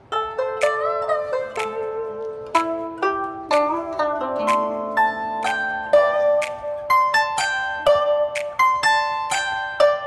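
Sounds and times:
plucked zither music: 0.0 - 10.0.

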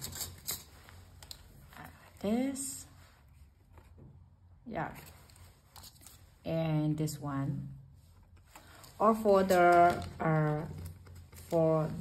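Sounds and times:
card pieces rustling: 0.0 - 2.0.

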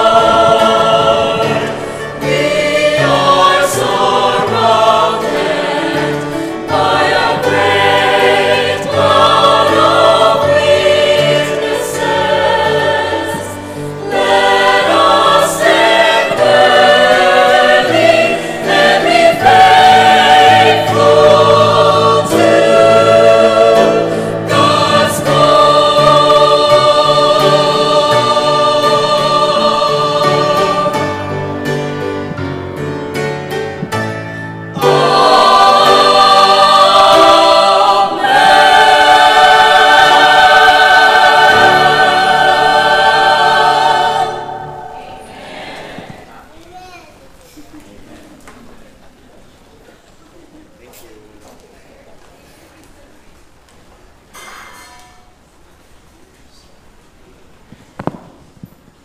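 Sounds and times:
mixed choir singing: 0.0 - 34.0, 34.7 - 46.5.

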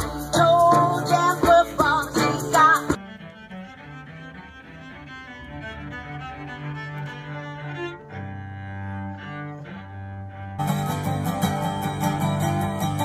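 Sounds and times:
bowed cello melody: 1.8 - 13.0.

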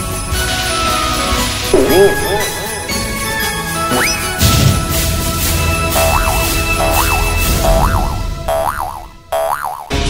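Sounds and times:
background music: 0.0 - 10.0
cartoon spring boing: 6.0 - 9.9.

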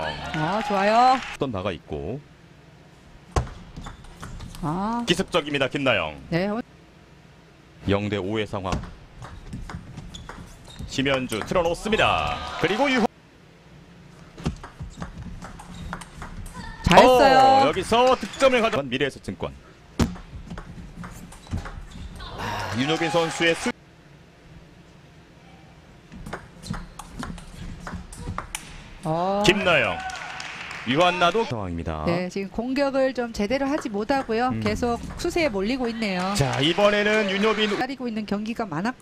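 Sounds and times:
table tennis ball hits: 8.7 - 11.6, 14.5 - 16.6.

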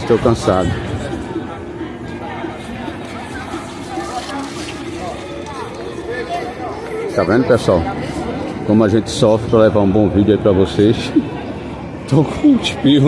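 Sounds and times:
distant overlapping voices: 0.0 - 13.0.

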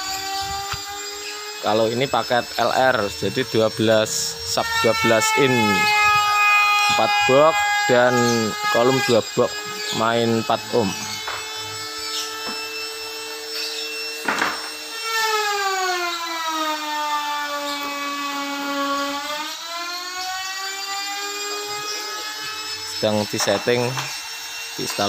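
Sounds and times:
motor whining: 0.0 - 25.0.

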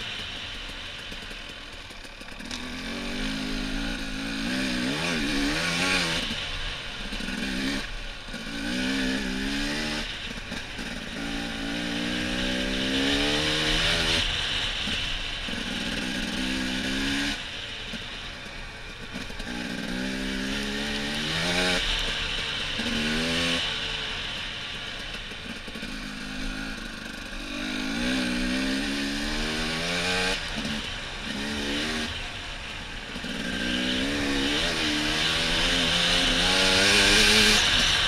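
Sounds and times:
dirt bike engine revving: 0.0 - 18.1, 18.8 - 38.0.

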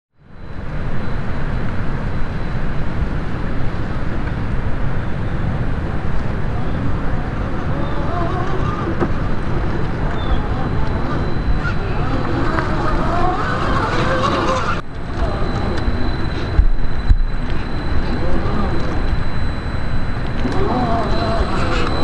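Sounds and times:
low rumbling outdoor noise: 0.1 - 22.0
electric motor whine: 5.5 - 22.0.

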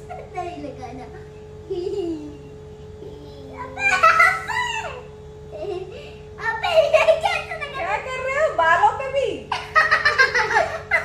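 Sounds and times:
girl talking: 0.2 - 1.3, 3.0 - 4.1, 6.4 - 9.3
girl giggling: 1.7 - 2.5, 3.8 - 6.2, 9.5 - 11.0.

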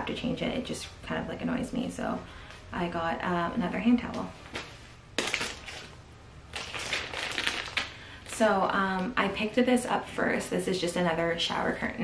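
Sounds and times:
plastic packaging crinkling: 4.5 - 8.5.

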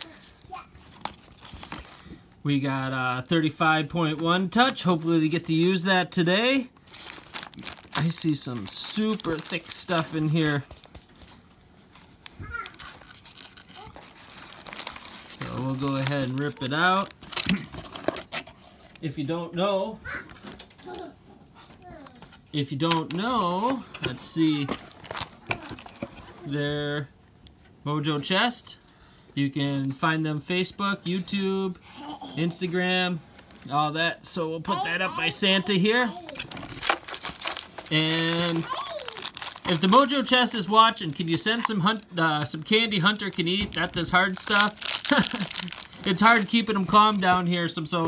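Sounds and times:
packing peanuts rustling: 0.0 - 2.2, 4.0 - 19.0, 23.2 - 26.3, 34.8 - 48.0.

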